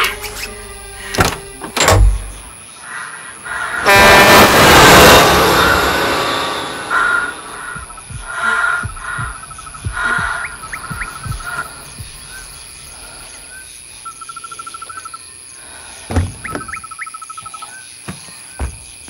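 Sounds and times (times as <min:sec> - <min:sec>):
crickets trilling: 0:00.0 - 0:03.9, 0:05.5 - 0:19.0
dull low thuds: 0:06.9 - 0:13.0.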